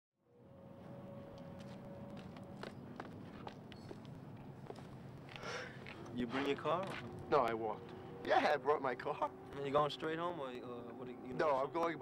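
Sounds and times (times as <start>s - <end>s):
low hum of night ambience: 0.2s - 12.0s
footsteps on pavement: 1.3s - 8.0s.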